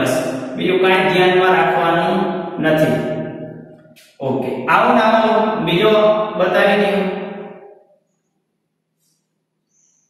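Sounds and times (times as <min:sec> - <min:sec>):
man speaking in sing-song way: 0:00.0 - 0:03.1, 0:04.2 - 0:07.2.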